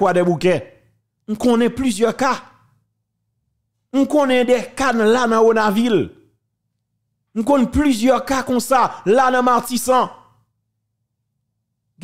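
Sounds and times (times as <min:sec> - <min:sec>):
man's voice: 0:00.0 - 0:02.6, 0:03.9 - 0:06.2, 0:07.3 - 0:10.4.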